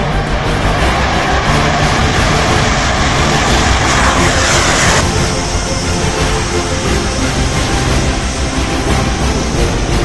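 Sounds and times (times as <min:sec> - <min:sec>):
background music: 0:00.0 - 0:10.0
fighter jet engine roar: 0:00.0 - 0:10.0.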